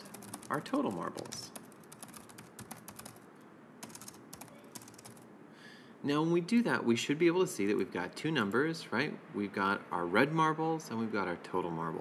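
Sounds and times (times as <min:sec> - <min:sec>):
typing on computer keyboard: 0:00.0 - 0:05.3.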